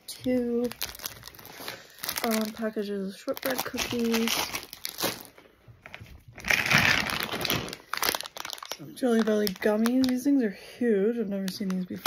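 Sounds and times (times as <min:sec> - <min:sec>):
plastic packaging crinkling: 0:00.2 - 0:10.4.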